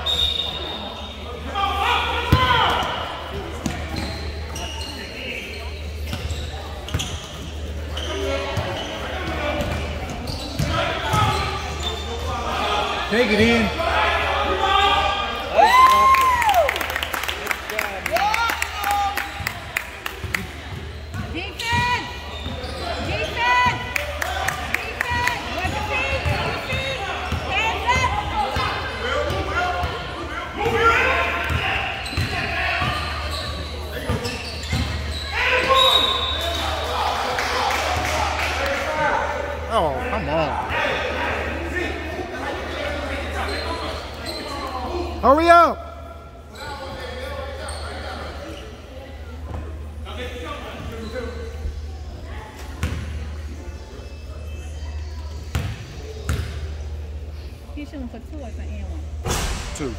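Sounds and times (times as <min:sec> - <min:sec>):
shoe squeaks: 0:00.0 - 0:01.4, 0:03.6 - 0:12.3, 0:20.7 - 0:23.7, 0:31.6 - 0:36.8, 0:43.2 - 0:45.2, 0:46.5 - 0:48.9, 0:50.7 - 0:51.9
voices echoing in hall: 0:00.0 - 0:59.9.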